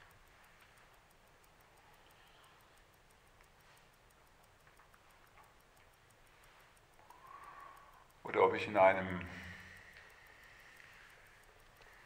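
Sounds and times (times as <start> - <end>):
faint ticking: 0.0 - 12.0.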